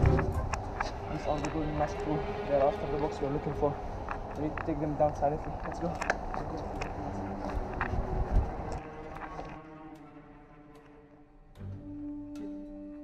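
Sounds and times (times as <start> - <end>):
background music with held notes: 0.0 - 0.6, 9.6 - 13.0
scuffing and clicks: 0.0 - 2.2, 3.8 - 9.6.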